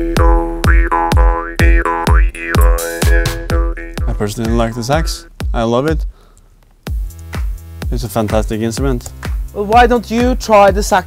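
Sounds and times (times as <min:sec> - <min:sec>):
jaw harp twanging drone: 0:00.0 - 0:05.6
electronic drum beat: 0:00.0 - 0:11.0.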